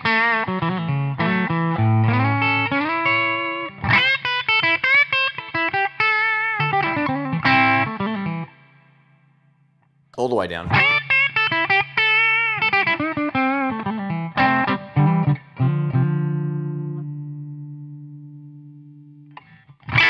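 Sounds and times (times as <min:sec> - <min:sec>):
electric guitar notes and chords: 0:00.0 - 0:09.0, 0:10.6 - 0:20.0.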